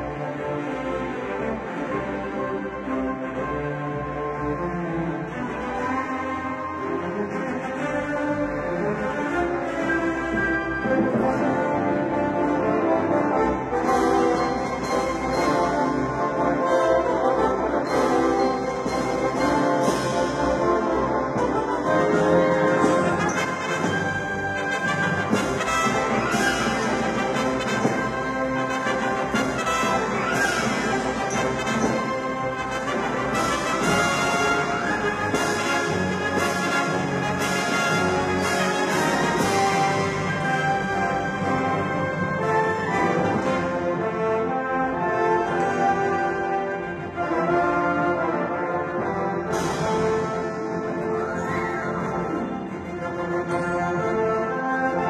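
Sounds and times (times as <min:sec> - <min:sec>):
orchestral film score: 0:00.0 - 0:55.0
trumpets and trombones: 0:00.0 - 0:55.0.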